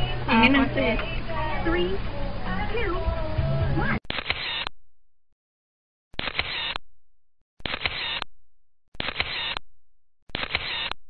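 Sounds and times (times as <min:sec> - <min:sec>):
camera shutter clicking: 0:04.1 - 0:04.7, 0:06.2 - 0:06.8, 0:07.6 - 0:08.2, 0:09.0 - 0:09.6, 0:10.3 - 0:11.0.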